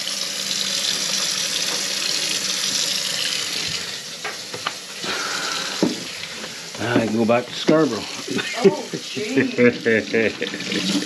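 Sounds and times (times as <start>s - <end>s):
kitchen faucet running into sink: 0.0s - 11.0s.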